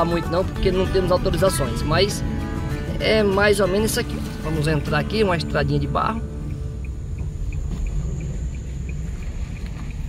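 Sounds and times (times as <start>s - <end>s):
car cabin rumble: 0.0s - 10.0s
faint regular ticking: 4.3s - 10.0s.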